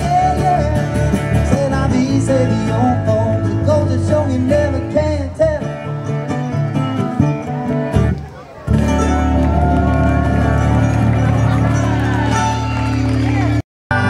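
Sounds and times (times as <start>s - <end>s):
person singing: 0.0s - 5.8s
bass guitar: 0.0s - 14.0s
strummed acoustic guitar: 0.0s - 14.0s.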